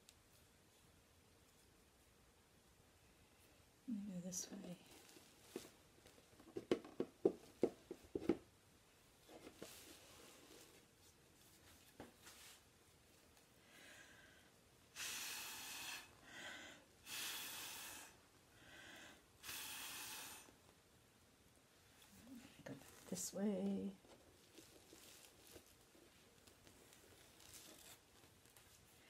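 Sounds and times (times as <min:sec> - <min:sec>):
soft short breaths: 0:13.6 - 0:20.6
air puffs through a straw: 0:14.9 - 0:16.2, 0:17.0 - 0:18.2, 0:19.4 - 0:20.6.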